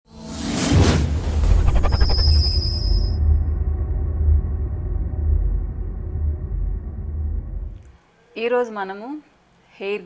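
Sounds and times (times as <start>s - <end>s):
deep low rumble: 1.1s - 7.9s.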